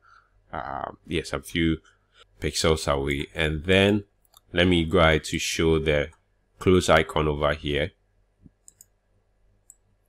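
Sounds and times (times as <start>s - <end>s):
computer mouse clicks: 8.4s - 9.0s, 9.6s - 9.9s.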